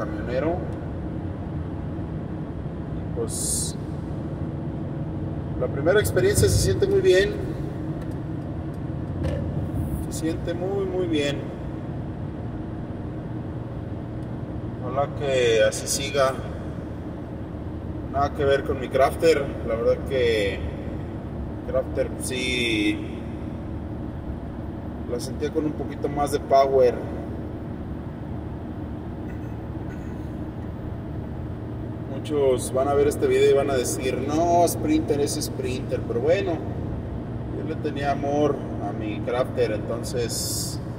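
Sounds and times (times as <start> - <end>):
van engine and tyre drone: 0.0 - 40.9.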